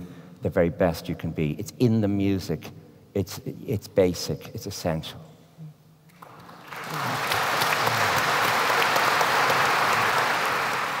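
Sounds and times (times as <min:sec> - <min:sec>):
audience applauding: 0:06.2 - 0:11.0.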